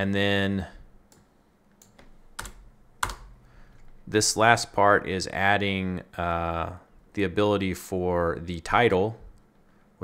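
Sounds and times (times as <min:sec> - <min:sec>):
computer keyboard keystrokes: 0:01.1 - 0:03.4.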